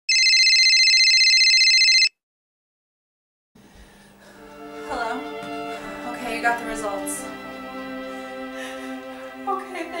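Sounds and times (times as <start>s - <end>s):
electronic telephone ringing: 0.1s - 2.2s.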